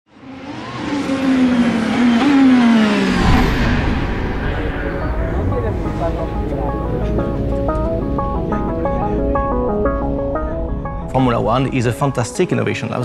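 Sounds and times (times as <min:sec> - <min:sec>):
race car engine passing by: 0:00.1 - 0:10.2
deep low rumble: 0:03.0 - 0:12.3.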